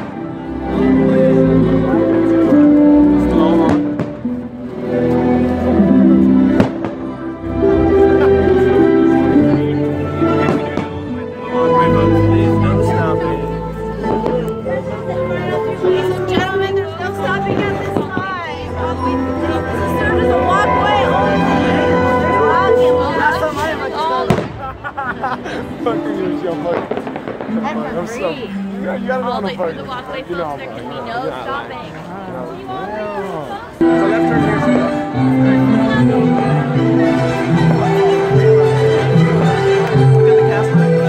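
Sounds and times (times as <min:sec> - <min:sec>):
people's voices: 0:00.0 - 0:41.0
firework bangs: 0:24.2 - 0:24.9, 0:26.7 - 0:27.9.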